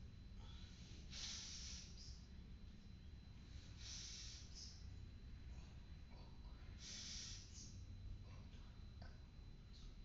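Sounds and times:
person exhaling: 0.4s - 2.0s, 3.8s - 4.7s, 6.8s - 7.6s.

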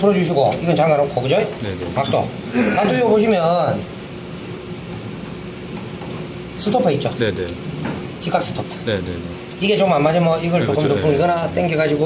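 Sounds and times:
ventilation hum: 0.0s - 12.0s.

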